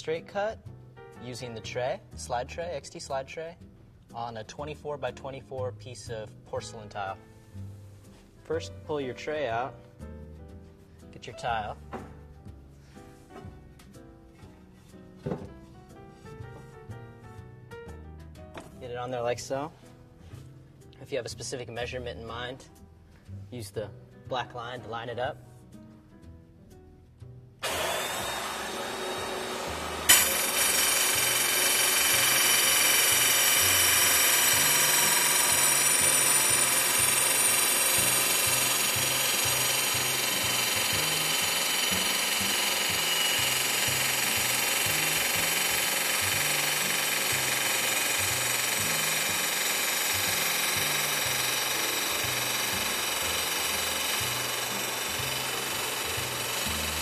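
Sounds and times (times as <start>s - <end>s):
saw blade grinding through tile: 27.6s - 57.0s
tile saw running: 27.6s - 57.0s.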